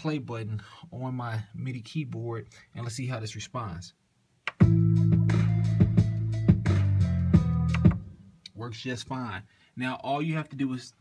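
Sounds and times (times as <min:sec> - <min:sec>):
sustained bass: 0:04.6 - 0:08.2.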